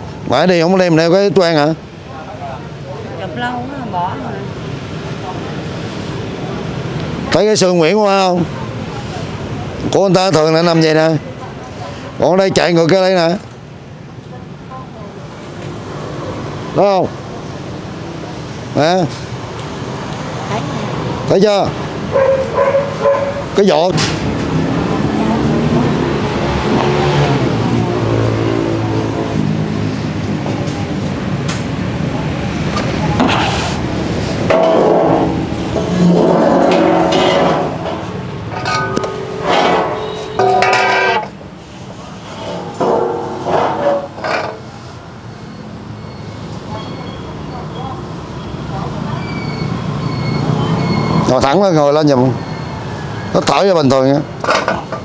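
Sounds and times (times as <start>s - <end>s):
indistinct voices talking: 31.9s - 41.4s.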